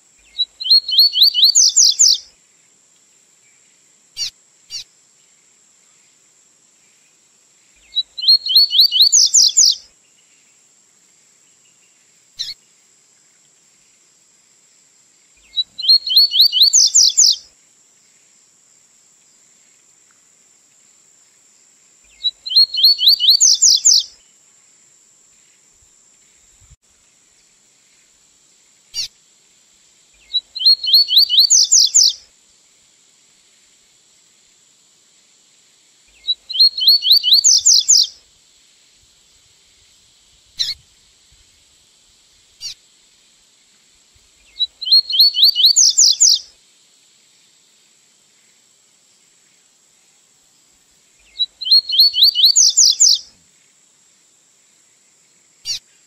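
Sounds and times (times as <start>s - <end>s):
bird singing rapid rising notes: 0.4s - 2.2s, 8.1s - 9.8s, 15.5s - 17.4s, 22.4s - 24.1s, 30.6s - 32.2s, 36.5s - 38.1s, 44.8s - 46.4s, 51.6s - 53.2s.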